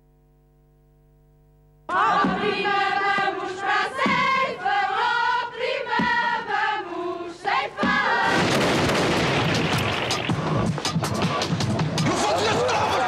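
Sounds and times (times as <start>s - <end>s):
women singing in unison: 1.9s - 8.4s.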